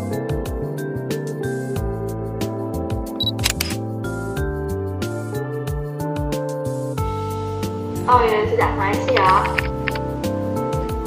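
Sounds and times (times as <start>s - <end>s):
background music: 0.0s - 11.0s
camera autofocus beep: 3.2s - 3.8s
camera shutter click: 3.2s - 3.8s.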